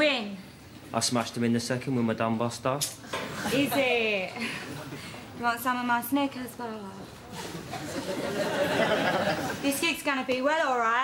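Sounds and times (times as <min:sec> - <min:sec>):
studio audience laughter: 0:07.4 - 0:09.6.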